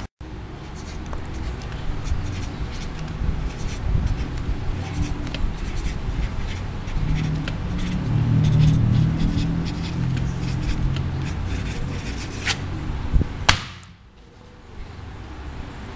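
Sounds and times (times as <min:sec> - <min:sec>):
low background rumble: 0:00.2 - 0:14.2
pen scratching on paper: 0:00.6 - 0:12.6.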